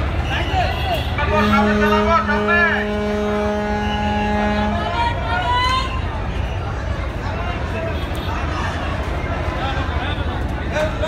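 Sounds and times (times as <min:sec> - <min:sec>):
boat engines rumbling: 0:00.0 - 0:11.0
voices: 0:00.0 - 0:11.0.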